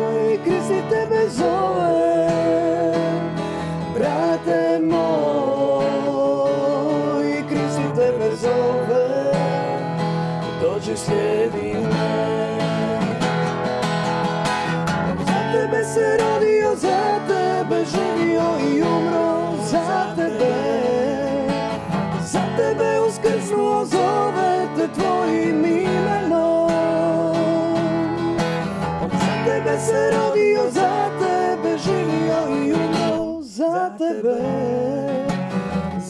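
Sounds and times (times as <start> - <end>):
acoustic guitar: 0.0 - 36.0
woman singing: 15.3 - 21.6, 22.3 - 28.2, 29.2 - 35.3.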